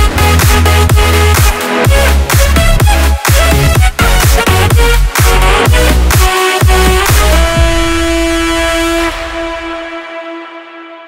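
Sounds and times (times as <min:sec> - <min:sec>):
low bass: 0:00.0 - 0:10.1
long synth note: 0:06.7 - 0:11.0.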